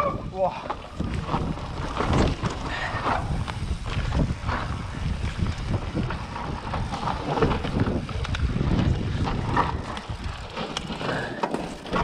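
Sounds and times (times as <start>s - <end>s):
wind rushing over microphone: 0.0s - 11.3s
bike tyres on dirt: 0.0s - 12.0s
bike knocking over bumps: 0.6s - 12.0s.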